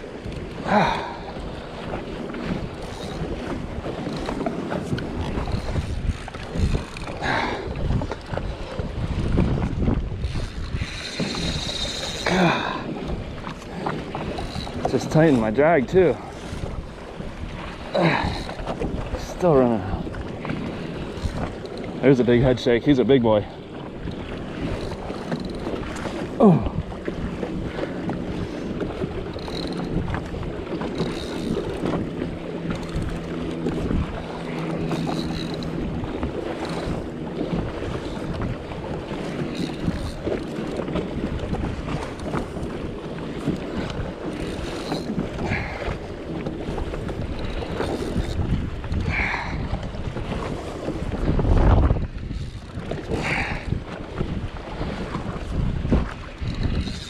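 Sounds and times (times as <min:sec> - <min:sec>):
water slapping against hull: 0:00.0 - 0:57.0
wind buffeting microphone: 0:00.0 - 0:57.0.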